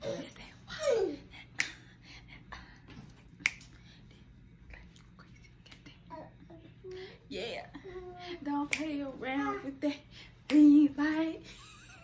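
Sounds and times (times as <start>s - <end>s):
finger snaps: 1.5s - 1.8s, 3.4s - 3.8s, 8.6s - 9.0s.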